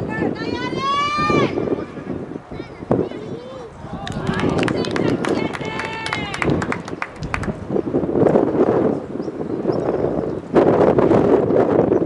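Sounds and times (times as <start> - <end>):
wind on microphone: 0.0 - 12.0
hands clapping: 4.0 - 7.6.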